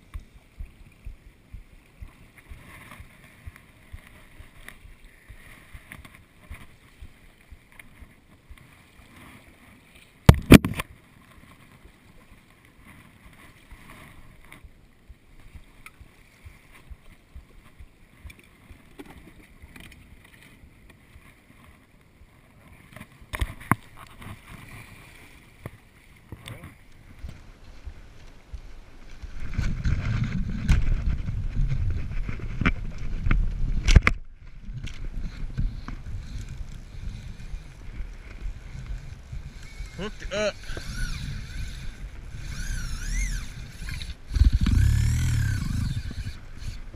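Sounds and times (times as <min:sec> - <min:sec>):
wind buffeting microphone: 0:00.0 - 0:08.6, 0:26.8 - 0:46.9
water: 0:00.0 - 0:46.9
wind: 0:00.0 - 0:46.9.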